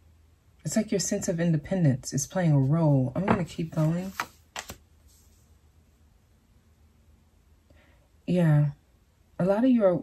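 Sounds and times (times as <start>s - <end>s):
card clicking on table: 3.8s - 4.8s.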